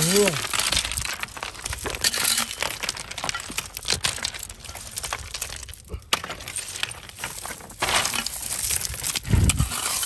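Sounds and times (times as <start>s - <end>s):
hand rake scraping through rock: 0.0s - 5.2s, 6.2s - 10.0s.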